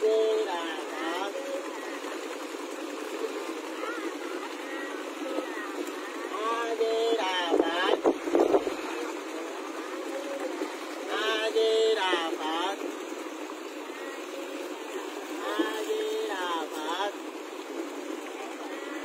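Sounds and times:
motorboat engine running: 0.0s - 19.0s
voices: 0.0s - 19.0s
water rushing past hull: 0.0s - 19.0s.

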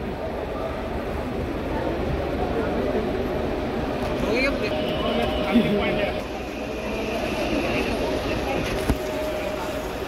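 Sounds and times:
bus engine rumbling: 0.0s - 10.0s
people chattering: 0.0s - 10.0s.

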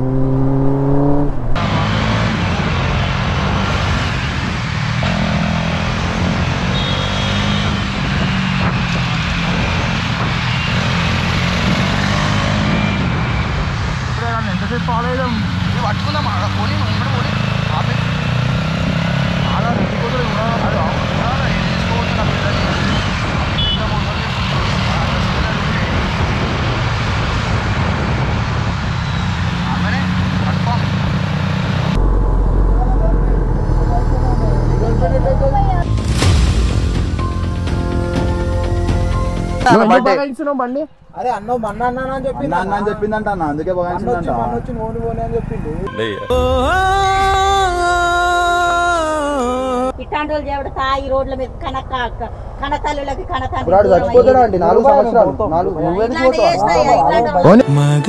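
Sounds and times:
surrounding traffic noise: 0.0s - 36.0s, 39.1s - 58.0s.

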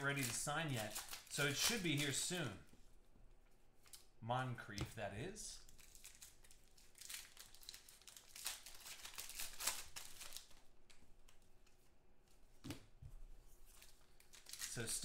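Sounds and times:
foil wrapper tearing and crinkling: 0.0s - 2.3s, 5.7s - 10.6s, 14.2s - 15.0s.

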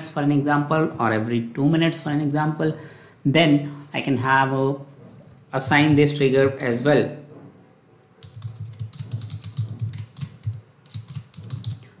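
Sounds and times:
typing on computer keyboard: 8.2s - 12.0s.

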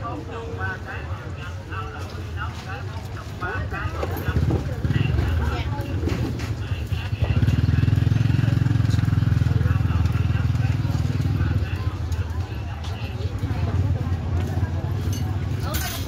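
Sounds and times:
market chatter: 0.0s - 16.0s
motorbike engine running: 3.7s - 16.0s.

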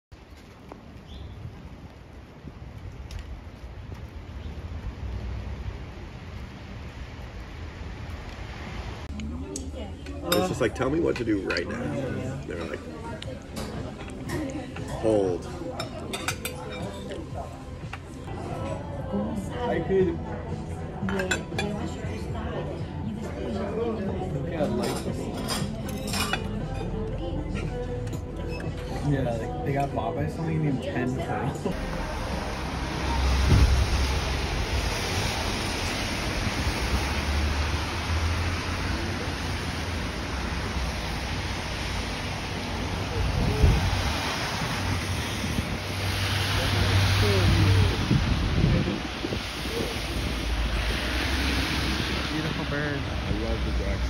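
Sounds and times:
low traffic rumble: 0.1s - 54.0s
tyres hissing on wet road: 1.9s - 9.1s, 31.7s - 54.0s
cutlery clinking on dishes: 10.3s - 12.9s, 15.8s - 17.2s, 21.0s - 21.8s, 24.6s - 27.8s
wind on microphone: 43.0s - 52.3s.

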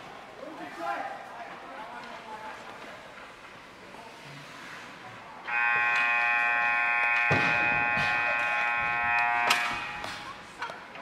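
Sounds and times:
scoreboard horn tone: 5.5s - 10.3s.

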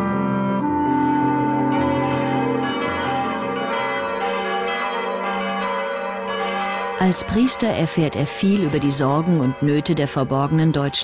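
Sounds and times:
church bells ringing: 0.0s - 11.0s.

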